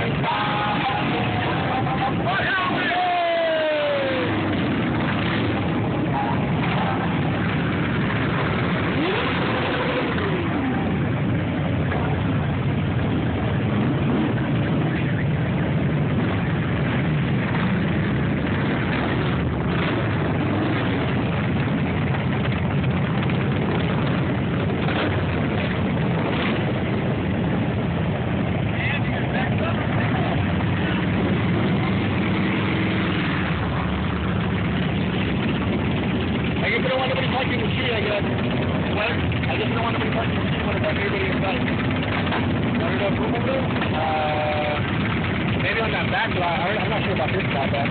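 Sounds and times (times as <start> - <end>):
motorcycle engines rumbling: 0.0 - 47.9
motorcycle engine revving: 4.0 - 47.9.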